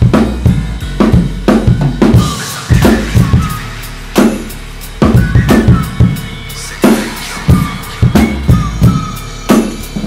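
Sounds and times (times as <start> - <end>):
drum hits: 0.0 - 10.0
hip-hop backing track: 0.0 - 10.0.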